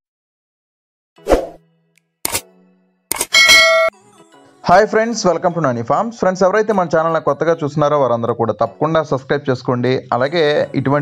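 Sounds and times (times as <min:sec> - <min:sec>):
pop sound effects: 0:02.3 - 0:02.5, 0:03.1 - 0:03.9.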